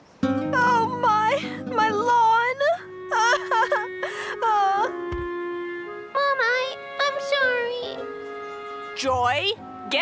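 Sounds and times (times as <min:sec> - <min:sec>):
held background music notes: 0:00.2 - 0:10.0
cartoon girl crying: 0:00.5 - 0:05.0.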